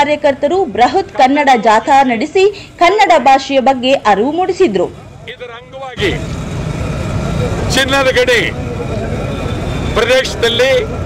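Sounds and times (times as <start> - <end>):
vehicle engines rumbling: 0.0 - 11.0
men speaking loudly: 4.9 - 11.0.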